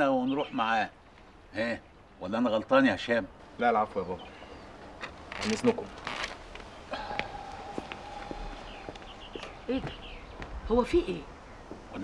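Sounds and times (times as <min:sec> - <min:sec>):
falling bird chirps: 0:03.6 - 0:12.0
hard-soled footsteps on pavement: 0:04.8 - 0:12.0.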